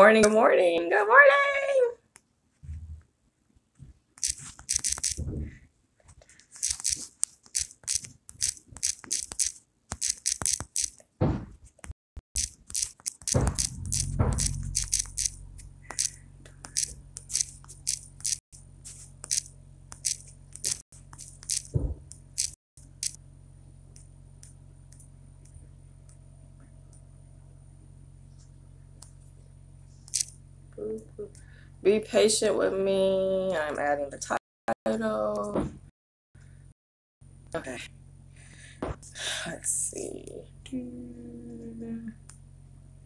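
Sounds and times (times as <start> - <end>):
fingernails tapping touchscreen: 4.2 - 5.3, 6.6 - 10.9, 12.4 - 18.4, 19.2 - 23.2
low steady hum: 12.4 - 34.3, 36.4 - 43.0.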